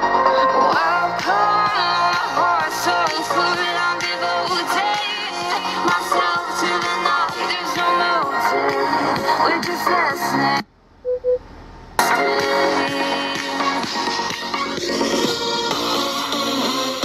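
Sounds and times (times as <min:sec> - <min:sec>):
pop song with vocals: 0:00.0 - 0:10.7, 0:12.0 - 0:17.0
short beeps: 0:11.0 - 0:11.5.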